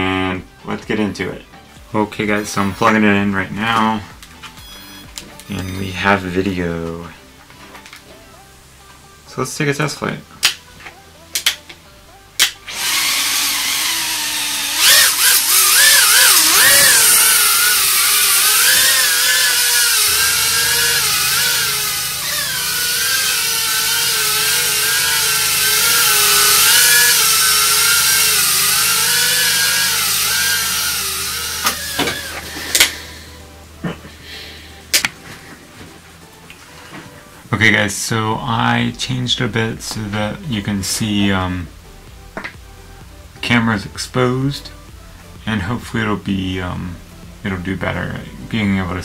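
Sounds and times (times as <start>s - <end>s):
drone motors whining: 4.5s - 6.2s, 12.7s - 33.6s.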